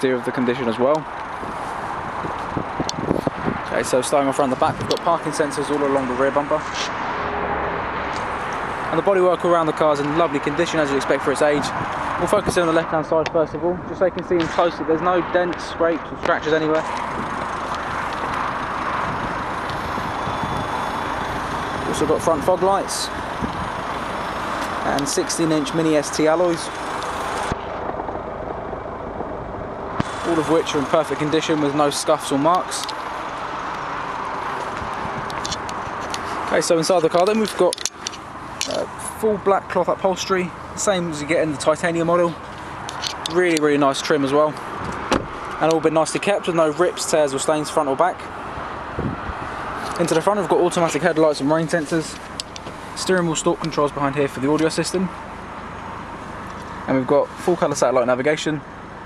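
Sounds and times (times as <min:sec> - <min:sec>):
low outdoor rumble: 0:00.0 - 0:59.0.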